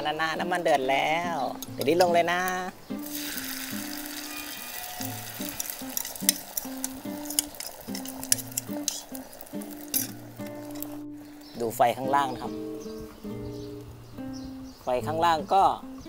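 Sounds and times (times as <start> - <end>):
oil spitting crackles: 1.5 - 11.8
egg sizzling in hot oil: 3.0 - 11.6.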